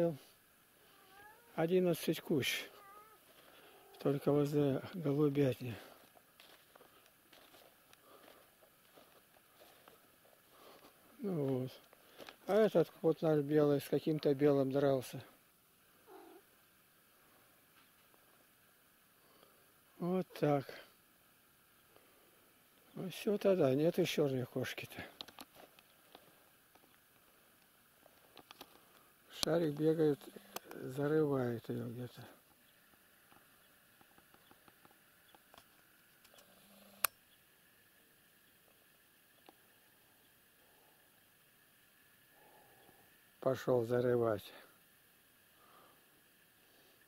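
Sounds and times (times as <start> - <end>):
cat meowing: 0.9 - 1.6, 2.7 - 4.0, 16.1 - 16.4
faint light clicks and ticks: 25.2 - 30.8.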